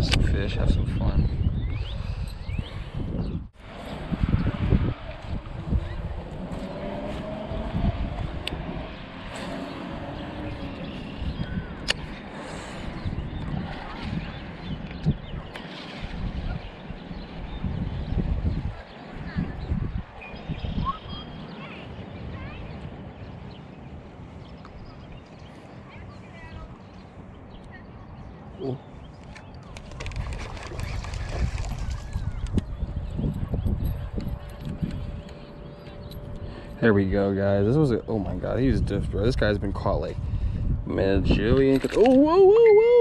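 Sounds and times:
wind buffeting microphone: 0.0s - 43.0s.

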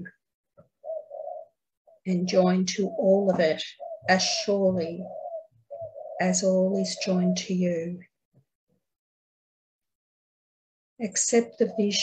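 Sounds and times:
dove cooing: 0.8s - 7.9s, 11.4s - 12.0s.

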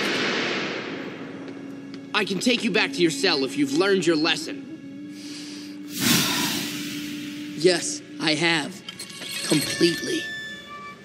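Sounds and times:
rushing hiss of air: 5.9s - 7.5s.

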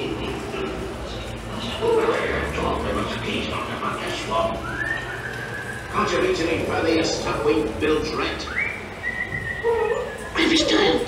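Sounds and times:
animatronic voices: 0.0s - 11.0s.

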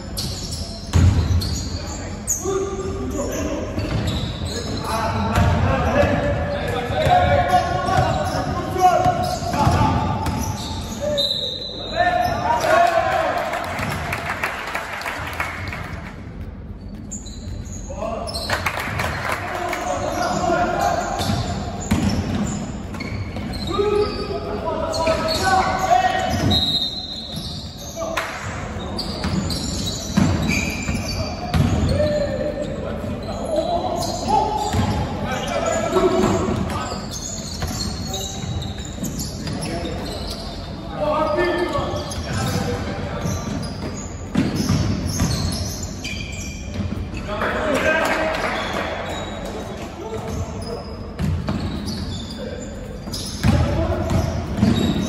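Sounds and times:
basketball bouncing on wooden court: 0.8s - 1.6s, 6.9s - 10.7s, 21.2s - 23.7s, 29.2s - 32.2s, 34.6s - 35.1s, 42.1s - 45.8s, 51.2s - 52.0s, 53.0s - 55.0s.

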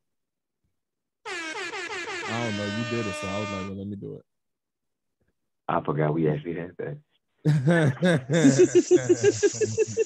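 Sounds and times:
air horn: 1.2s - 3.9s.

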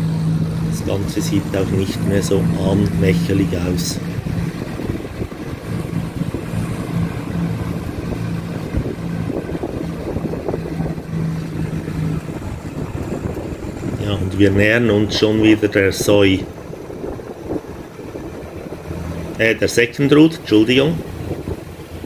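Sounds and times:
scooter engine running: 0.0s - 19.5s
road and wind noise: 0.0s - 22.0s.

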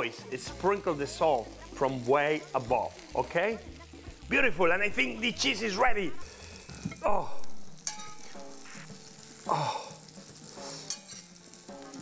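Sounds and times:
peppers sizzling in oil: 0.0s - 12.0s.

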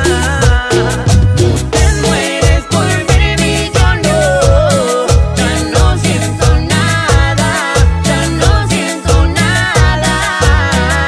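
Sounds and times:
band playing dance music: 0.0s - 11.0s
keyboard melody: 0.0s - 11.0s.

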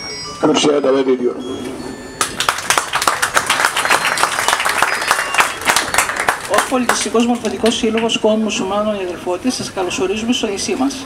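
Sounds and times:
audience applauding: 2.2s - 7.7s.

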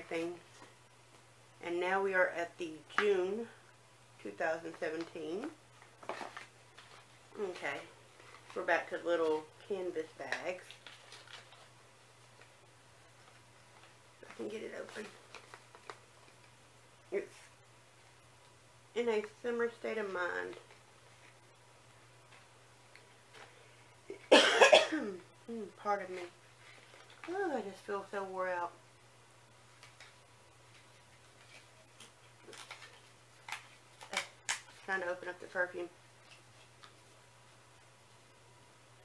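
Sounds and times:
faint steady hum: 0.0s - 39.0s
packaging clicks and rustles: 5.8s - 7.2s, 10.5s - 12.5s, 13.2s - 16.6s, 29.8s - 34.8s.

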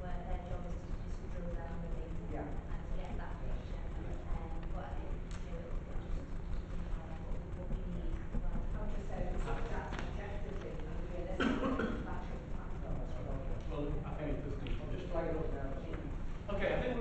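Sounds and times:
faint speech: 0.0s - 17.0s.

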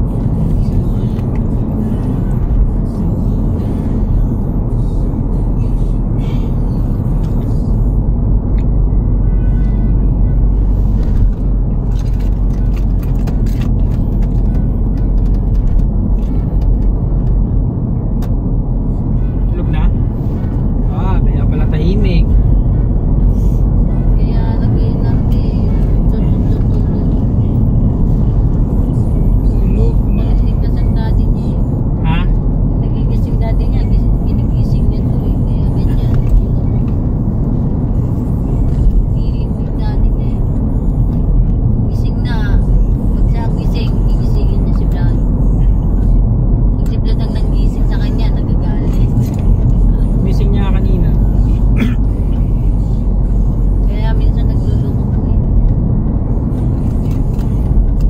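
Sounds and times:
engine and tyre rumble in car: 0.0s - 58.0s.

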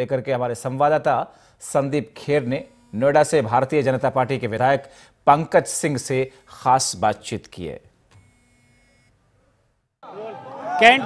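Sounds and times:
faint electronic tone: 6.0s - 7.0s, 8.2s - 9.2s.

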